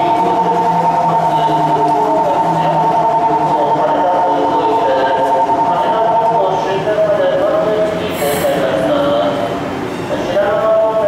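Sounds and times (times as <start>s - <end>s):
high electronic signal tone: 0.0s - 6.9s
lower shifting tones: 0.0s - 10.0s.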